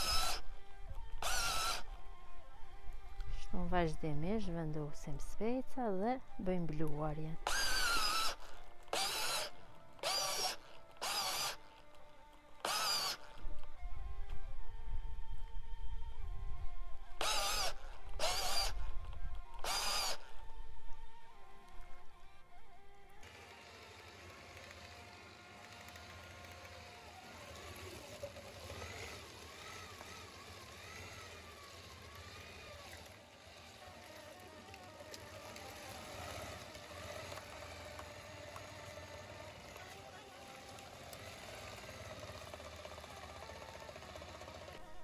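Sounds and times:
high drill whines: 0.0 - 3.4, 7.4 - 11.9, 12.6 - 14.5, 17.1 - 45.0
meat grinder driven by power drill: 0.0 - 3.4, 7.4 - 14.5, 17.0 - 45.0
quiet background music: 0.0 - 25.6.

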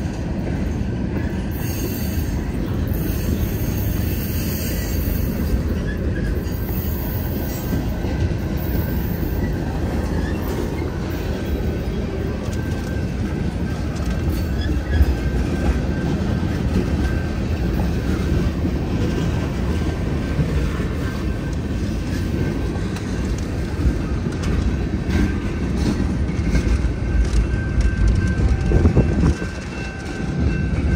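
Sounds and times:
freight train wheels rumbling: 0.0 - 30.9.

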